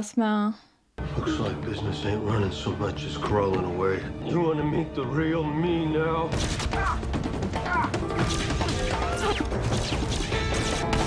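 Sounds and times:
dramatic background music: 1.0 - 11.0.

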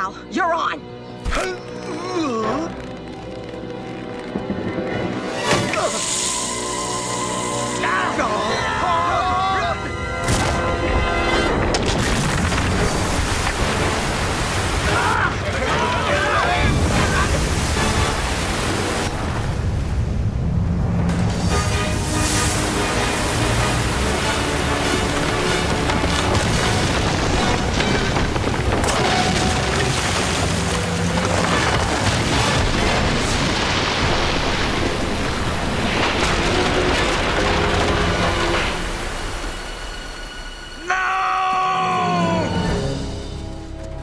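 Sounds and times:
dramatic orchestral music: 0.0 - 44.0
heavy rumbling crashes and booms: 24.6 - 39.4.

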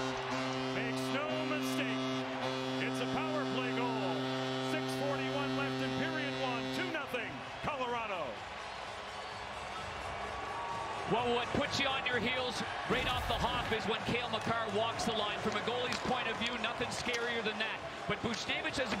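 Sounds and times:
goal horn: 0.0 - 8.2
crowd cheering and clapping: 0.0 - 19.0.

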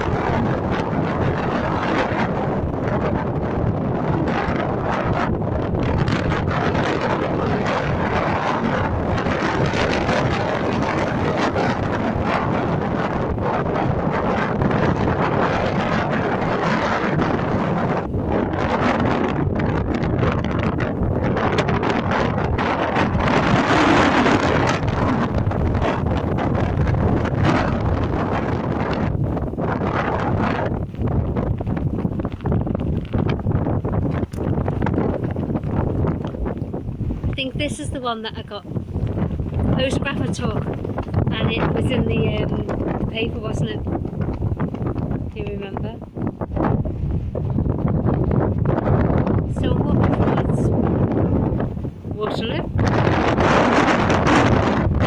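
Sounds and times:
gusty wind buffeting microphone: 0.0 - 55.0.

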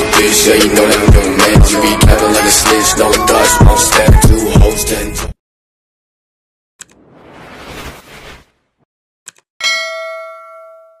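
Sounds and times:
bright bell ding: 9.6 - 11.0.

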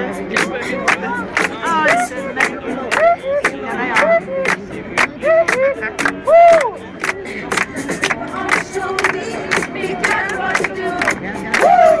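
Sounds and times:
steady beat: 0.0 - 12.0
crowd shouting: 11.5 - 12.0.

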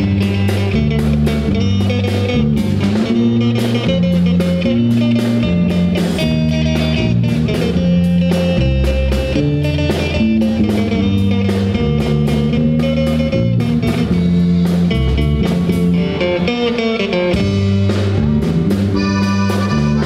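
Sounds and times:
drum kit beat: 0.0 - 20.0
electric bass: 0.0 - 20.0
electric guitar: 0.0 - 20.0
button accordion: 18.9 - 20.0.

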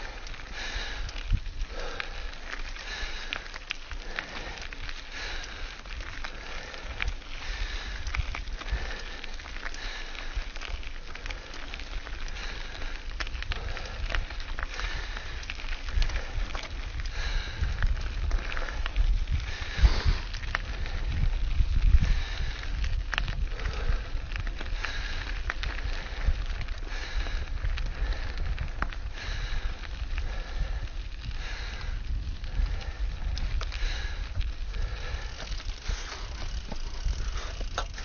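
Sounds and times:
bike rattling clicks: 0.0 - 38.0
bike tyres crunching on gravel: 0.0 - 38.0
wind rumbling on microphone: 0.0 - 38.0.

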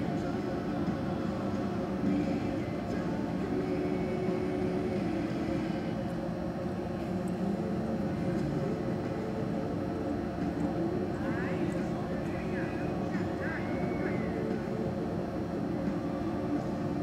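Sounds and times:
arena background hum: 0.0 - 17.0.

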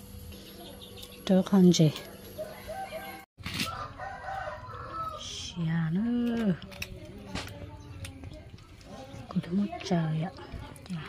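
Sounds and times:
rooster crowing: 2.4 - 5.2.

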